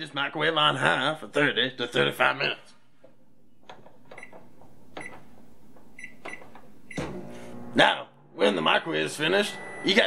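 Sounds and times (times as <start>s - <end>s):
microwave keypad beeps: 4.2s - 4.4s, 5.0s - 5.2s, 6.0s - 7.1s.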